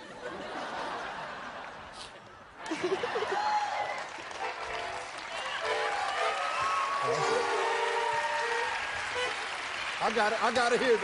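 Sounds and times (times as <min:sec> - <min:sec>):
audience applause: 0:02.6 - 0:11.0
accordion chords: 0:04.4 - 0:09.8.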